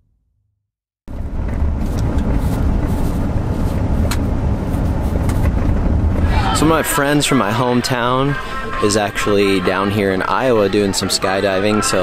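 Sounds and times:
road and tyre rumble in car: 1.1 - 8.9.

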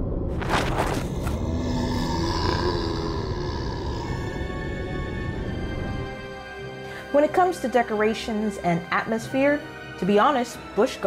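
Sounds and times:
deep rumble: 0.0 - 6.6
monster growling: 0.4 - 5.0.

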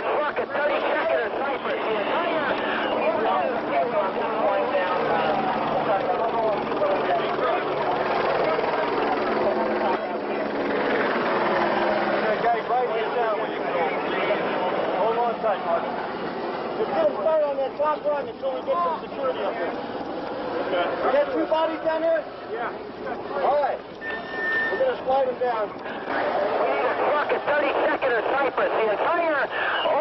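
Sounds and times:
men talking and calling: 0.0 - 30.0.

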